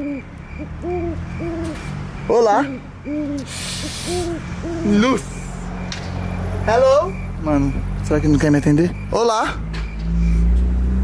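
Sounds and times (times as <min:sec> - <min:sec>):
owl-like hoots: 0:00.0 - 0:01.8, 0:02.6 - 0:05.5.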